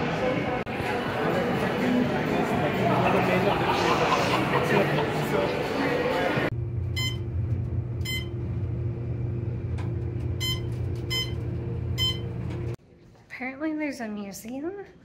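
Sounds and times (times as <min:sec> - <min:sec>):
busy lobby noise: 0:00.0 - 0:06.5
elevator low hum: 0:06.5 - 0:12.8
short electronic beeps: 0:07.0 - 0:07.2, 0:08.0 - 0:08.3, 0:10.4 - 0:11.4, 0:12.0 - 0:12.3.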